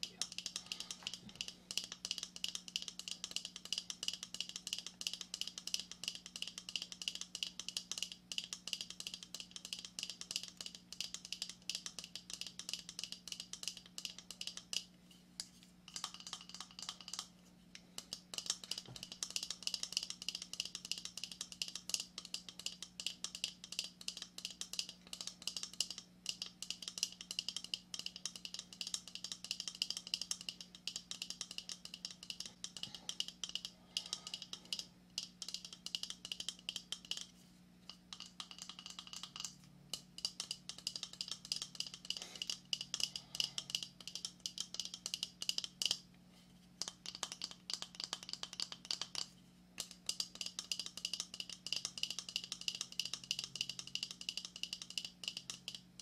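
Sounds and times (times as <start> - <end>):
faint steady hum: 0.0 - 56.0
fingernails tapping on hollow shell: 15.9 - 17.3, 18.0 - 37.3, 37.9 - 46.0, 46.8 - 55.8.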